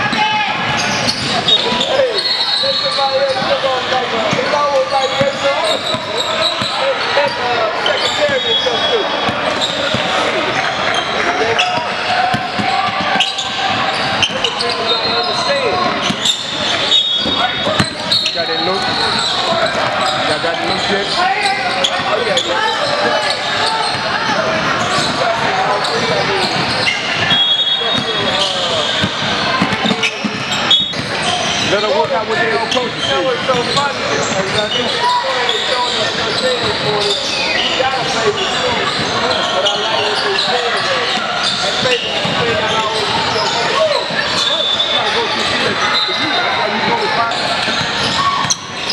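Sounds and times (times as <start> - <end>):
hubbub of many voices: 0.0 - 48.9
sneakers squeaking: 0.0 - 48.9
basketball bouncing on wooden floor: 29.0 - 31.1.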